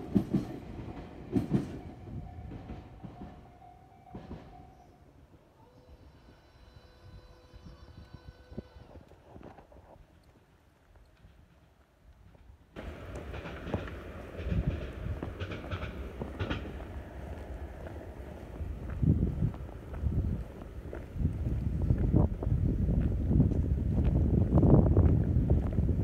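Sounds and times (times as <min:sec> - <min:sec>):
train whine: 0:00.0 - 0:09.6, 0:12.8 - 0:26.0
street noise: 0:12.8 - 0:26.0
wind buffeting microphone: 0:12.8 - 0:26.0.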